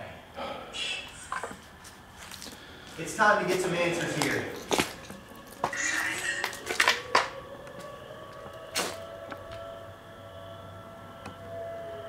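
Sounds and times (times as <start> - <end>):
distant siren wailing: 2.8 - 12.0.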